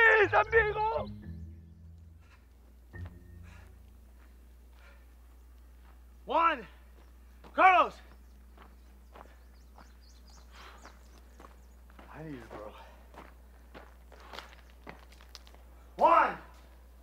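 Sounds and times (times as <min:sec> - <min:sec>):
footsteps on grass: 0:02.6 - 0:17.0
footsteps on brick paving: 0:03.0 - 0:17.0.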